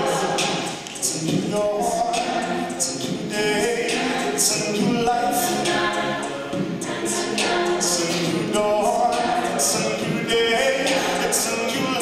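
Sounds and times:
backing vocal harmonies: 0:00.0 - 0:12.0
lead voice singing: 0:00.0 - 0:12.0.

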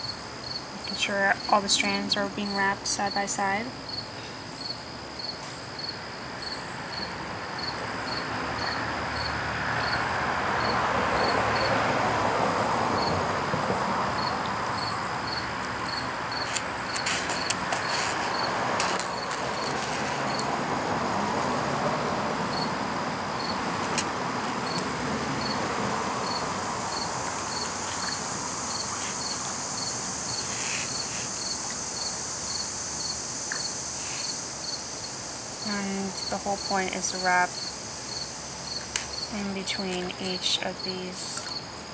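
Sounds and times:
cricket chirping: 0:00.0 - 0:41.9
broad rushing noise: 0:05.4 - 0:41.9.

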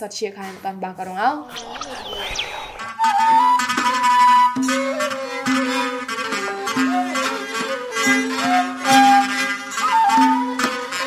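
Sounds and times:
person speaking: 0:01.0 - 0:02.8
whooshing transition sweep: 0:01.5 - 0:03.5
music: 0:02.9 - 0:11.0.

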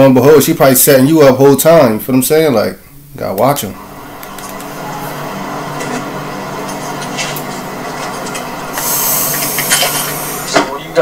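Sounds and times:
noisy rushing hiss: 0:03.0 - 0:11.0
low hum of even tones: 0:03.7 - 0:11.0.

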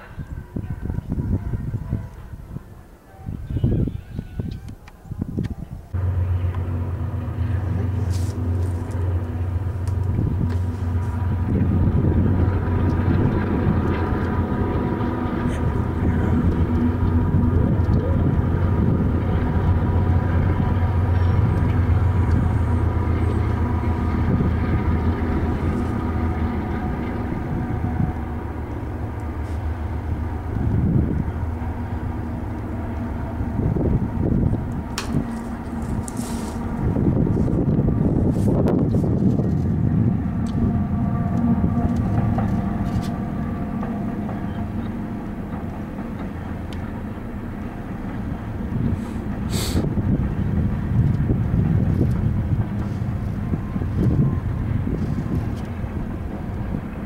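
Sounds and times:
diesel locomotive engines droning: 0:00.0 - 0:57.0
train wheels clattering on rails: 0:06.4 - 0:57.0.

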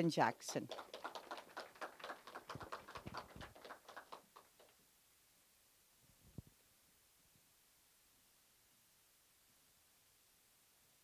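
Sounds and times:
small audience clapping: 0:00.4 - 0:04.8.

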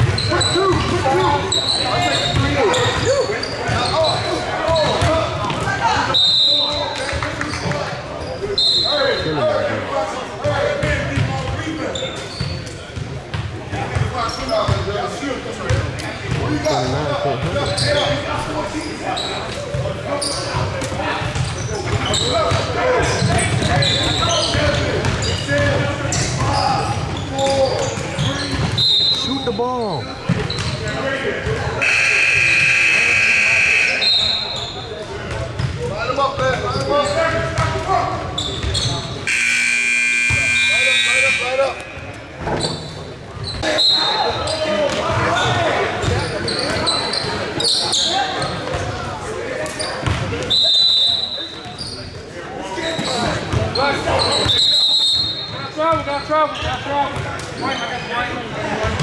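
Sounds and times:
basketballs bouncing: 0:00.0 - 0:05.8, 0:20.6 - 0:29.3, 0:30.2 - 0:33.4, 0:35.2 - 0:36.8, 0:38.5 - 0:42.8, 0:50.0 - 0:50.4
sneakers squeaking: 0:00.0 - 0:59.0
scoreboard buzzer: 0:31.8 - 0:34.0, 0:39.3 - 0:41.9.

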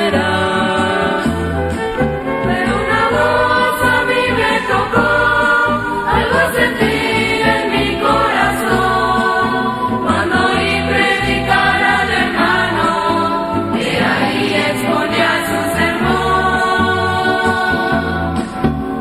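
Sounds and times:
ensemble singing a hymn: 0:00.0 - 0:19.0
instrumental accompaniment with bass: 0:00.0 - 0:19.0.

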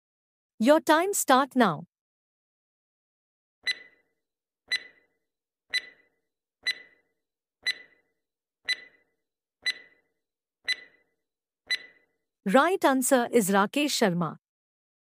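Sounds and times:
timer ticks with ringing tail: 0:03.7 - 0:04.0, 0:04.7 - 0:05.1, 0:05.7 - 0:07.0, 0:07.6 - 0:08.1, 0:08.7 - 0:10.0, 0:10.7 - 0:11.0, 0:11.7 - 0:12.0.

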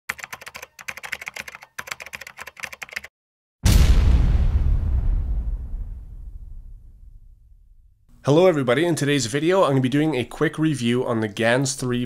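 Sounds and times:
keyboard typing clicks: 0:00.1 - 0:03.1
deep boom: 0:03.6 - 0:08.1.

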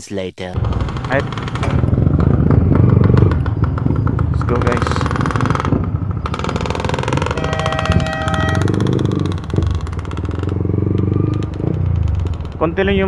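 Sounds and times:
motorcycle engine pulling away: 0:00.6 - 0:13.0
steady high tone: 0:07.2 - 0:08.8.

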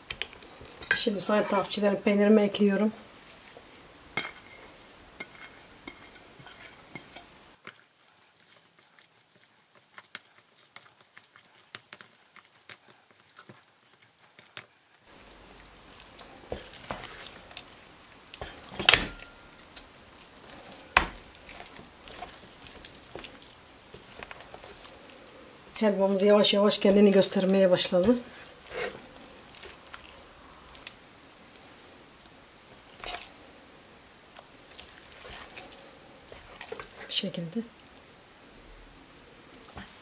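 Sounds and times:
wooden spoon scraping a pot: 0:00.0 - 0:01.9, 0:03.2 - 0:31.0, 0:32.7 - 0:33.4, 0:34.4 - 0:37.3.

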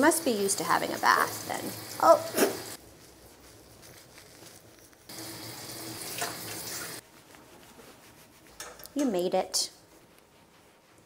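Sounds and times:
water spraying from bath nozzle: 0:00.0 - 0:07.0.

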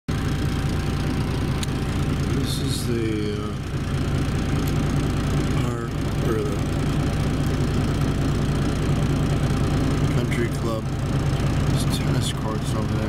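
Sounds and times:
diesel engine idling: 0:00.1 - 0:13.0.

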